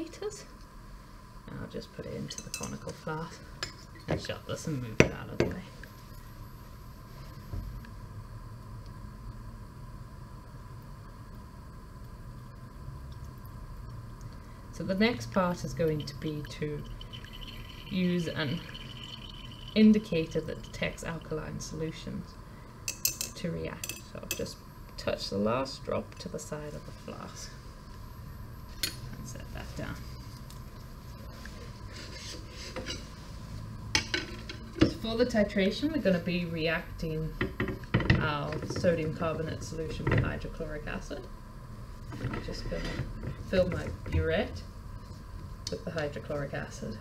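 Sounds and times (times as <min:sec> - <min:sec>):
room noise hum and hiss: 0:00.0 - 0:47.0.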